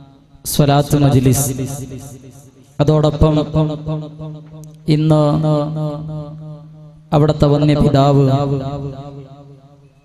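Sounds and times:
man chanting devotional phrase: 0.5 - 9.5.

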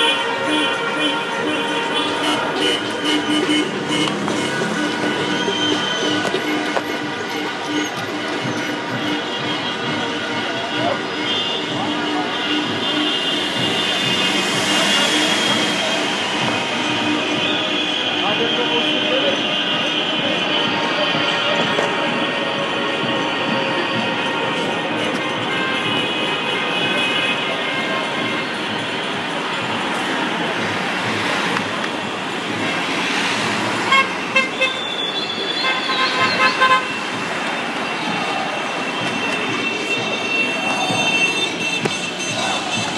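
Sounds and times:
car horns honking: 0.0 - 42.9
traffic noise: 0.0 - 42.9
voices: 0.0 - 42.9.

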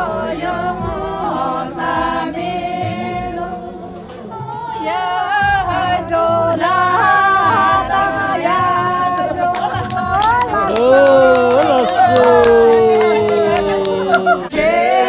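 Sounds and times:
group singing without instruments: 0.0 - 15.0.

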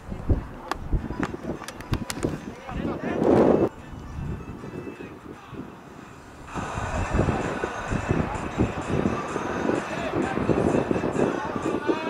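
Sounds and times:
distant players' voices: 6.5 - 12.0.

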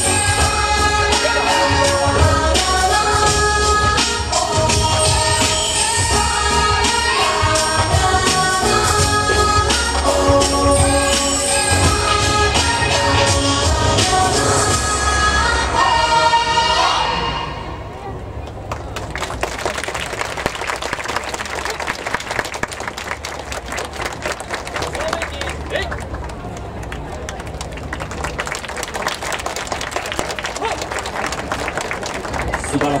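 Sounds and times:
dance music: 0.0 - 17.3
crowd voices: 0.0 - 33.0
audience applause: 18.7 - 33.0.

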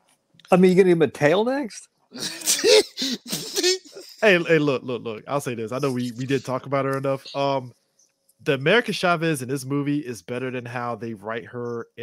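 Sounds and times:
breathy laughter: 2.2 - 4.4.

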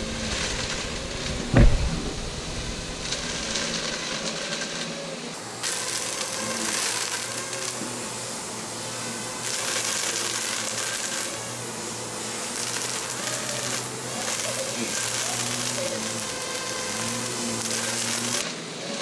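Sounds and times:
water spray hissing: 0.0 - 4.0, 5.6 - 18.4
quadcopter motors whining: 0.0 - 19.0.

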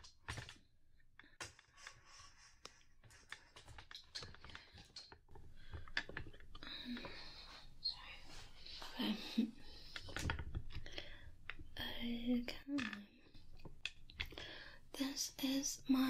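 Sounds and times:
woman whispering: 7.8 - 9.4, 11.8 - 13.1, 15.0 - 16.0.

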